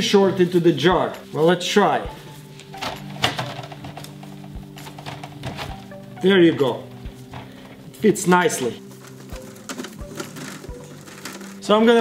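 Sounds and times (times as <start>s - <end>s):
soft background music: 0.0s - 12.0s
cloth rustling: 0.4s - 12.0s.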